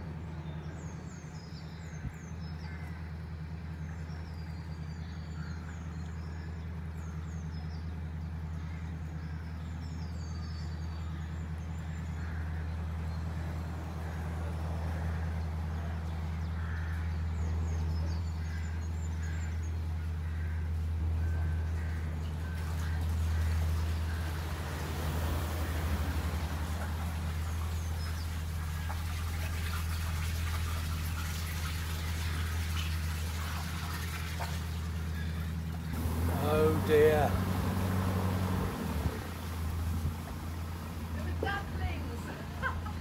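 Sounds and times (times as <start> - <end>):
birds chirping: 0.0 - 43.0
diesel boat engine humming: 0.0 - 43.0.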